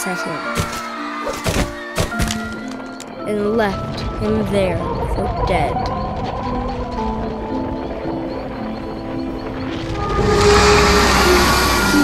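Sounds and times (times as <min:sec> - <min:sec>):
dark soundtrack music: 0:00.0 - 0:12.0.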